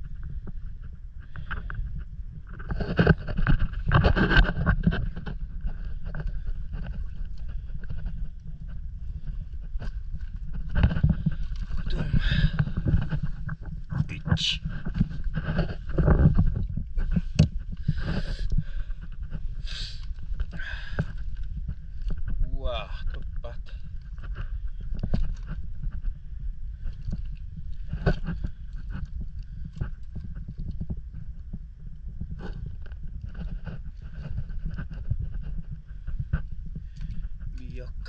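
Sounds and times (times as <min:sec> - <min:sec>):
steady low rumble: 0:00.0 - 0:38.0
footsteps on stones: 0:01.3 - 0:22.5.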